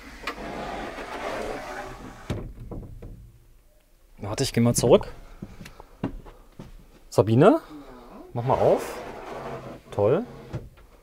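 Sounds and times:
sliding door scraping: 0.0s - 2.4s, 8.4s - 10.7s.

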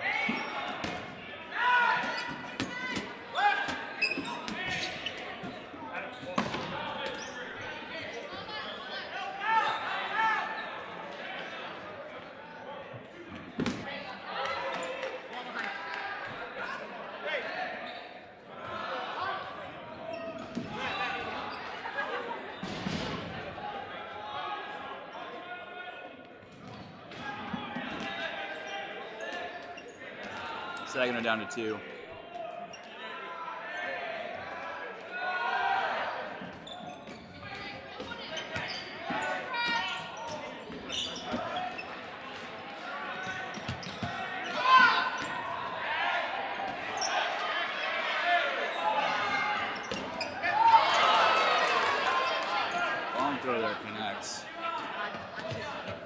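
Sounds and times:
players shouting in echoing hall: 0.0s - 56.0s.

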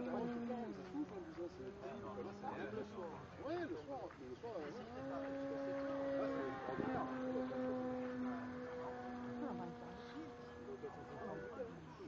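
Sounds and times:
model airplane motor droning: 0.0s - 3.6s, 4.6s - 12.0s
faint voices: 0.0s - 12.0s.

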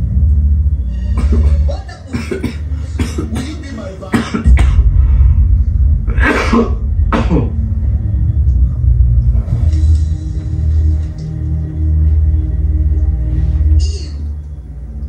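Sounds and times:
bass-heavy music from television: 0.0s - 15.0s
person coughing: 1.2s - 4.9s, 6.1s - 7.6s.

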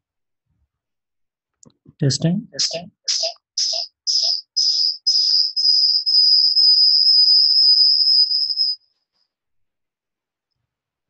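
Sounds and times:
microphone feedback whistle: 2.6s - 8.8s.

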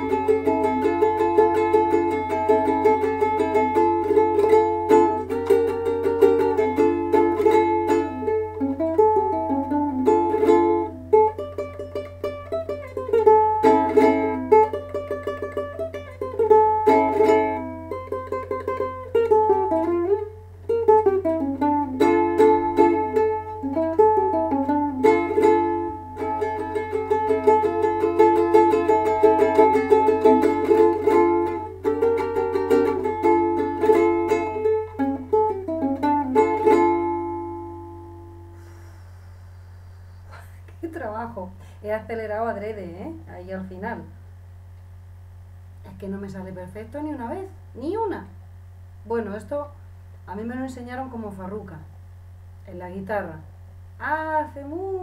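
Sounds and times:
ukulele strumming flamenco: 0.0s - 38.7s
faint low hum: 0.0s - 55.0s.

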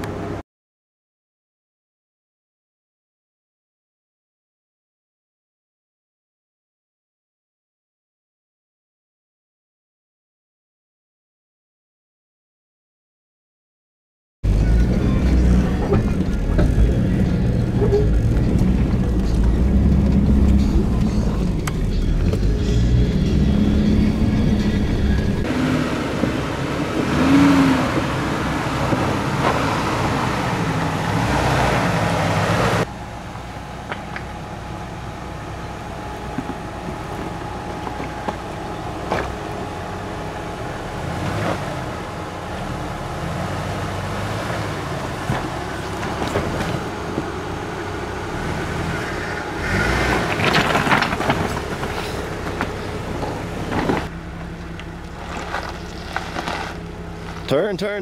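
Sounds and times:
engine running at low speed: 14.4s - 58.0s
tyres grinding over rocks: 44.1s - 47.4s, 48.3s - 57.7s.

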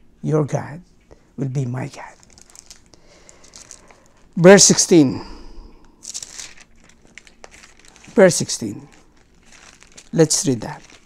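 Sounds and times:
faint crinkles and clicks: 1.9s - 4.4s, 5.7s - 11.0s.

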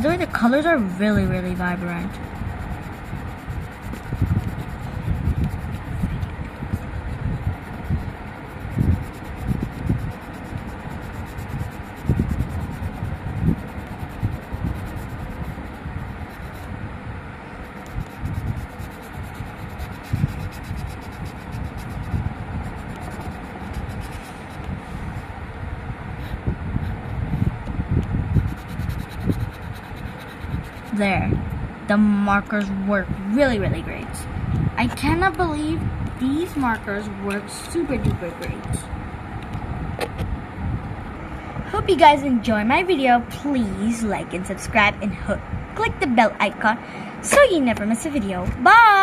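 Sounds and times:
marker rubbing on paper: 0.0s - 16.7s, 17.6s - 25.2s, 28.3s - 31.1s.

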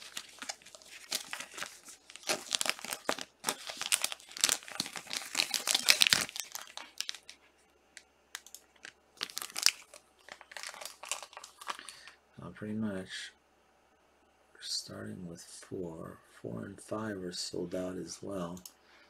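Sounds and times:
plastic card sleeves crinkling: 0.0s - 7.4s, 8.3s - 12.1s.

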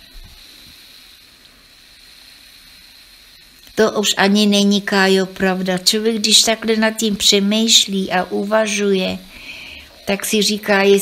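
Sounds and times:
faint high whine: 0.0s - 11.0s
low background hiss: 0.0s - 11.0s.

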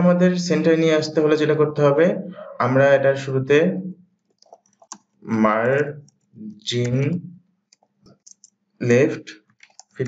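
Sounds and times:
person speaking: 0.0s - 7.4s, 8.1s - 10.0s.

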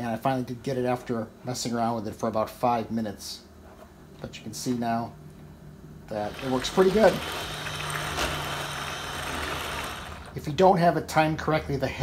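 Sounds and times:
small electric motor whirring: 6.2s - 10.4s.

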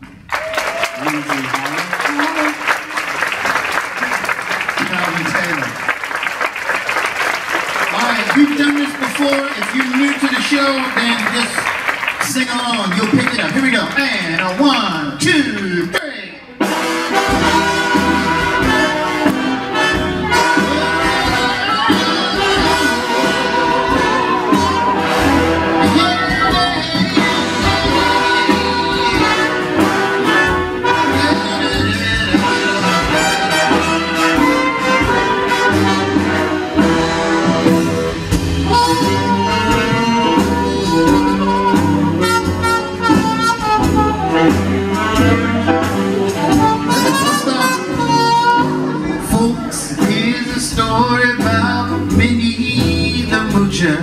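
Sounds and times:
jazz big band playing: 0.1s - 54.0s.

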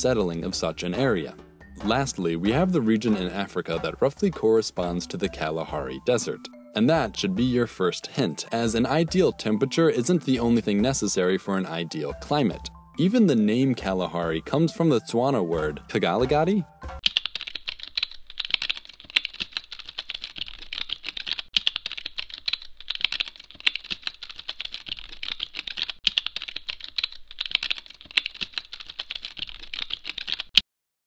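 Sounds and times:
computer keyboard typing: 17.0s - 30.6s.

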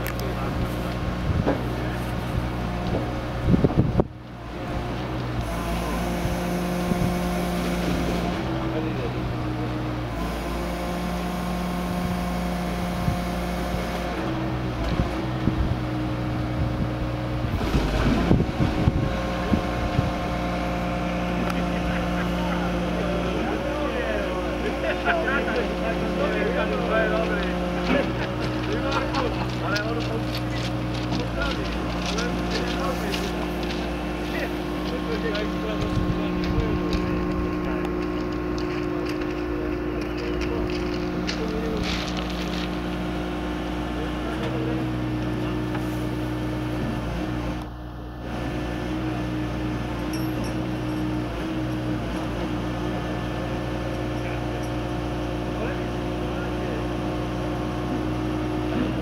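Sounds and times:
diesel engine running: 0.0s - 59.0s.

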